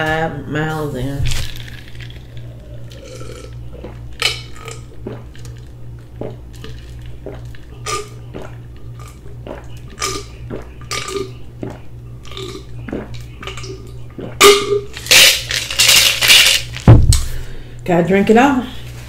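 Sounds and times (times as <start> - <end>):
person gulping juice: 1.2 - 17.3
mouth and breath sounds: 4.9 - 14.4.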